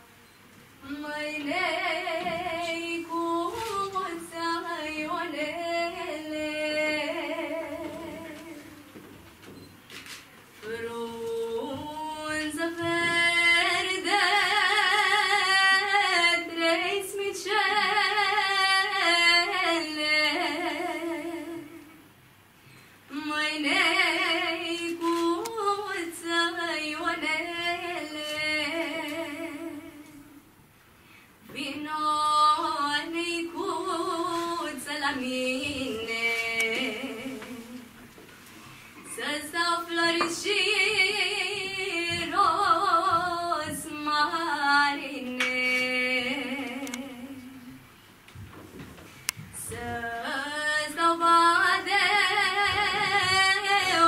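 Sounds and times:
faint room noise: 0.0s - 54.0s
young female voice singing: 0.8s - 8.9s, 10.6s - 22.0s, 31.5s - 38.0s, 39.1s - 47.8s, 49.6s - 54.0s.

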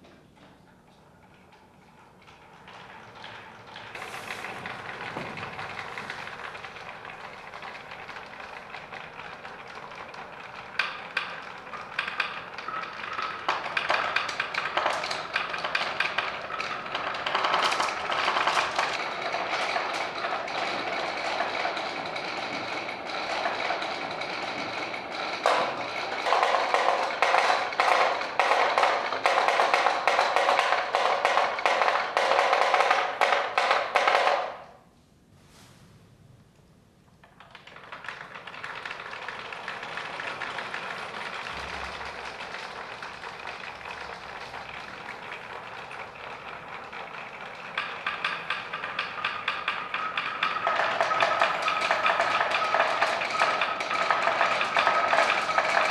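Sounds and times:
marbles rattling through wooden run: 1.3s - 34.6s, 37.2s - 55.9s.

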